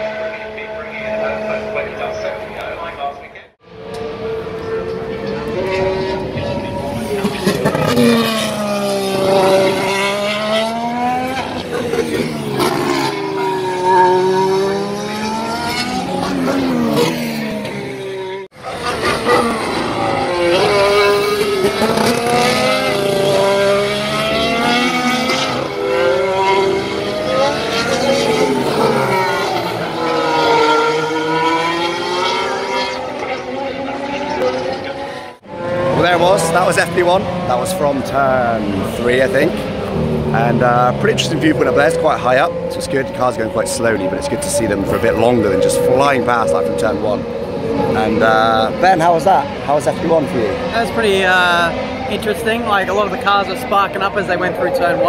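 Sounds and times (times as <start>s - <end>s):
racing car engines passing: 0.0s - 55.0s.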